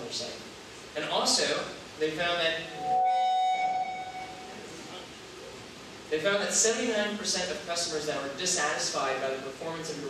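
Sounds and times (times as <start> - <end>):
microphone feedback ringing tone: 2.6 - 4.7.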